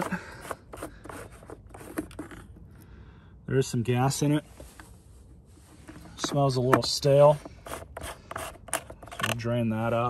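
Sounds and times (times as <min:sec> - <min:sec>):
plastic cap unscrewing: 0:00.0 - 0:02.6, 0:05.8 - 0:09.5.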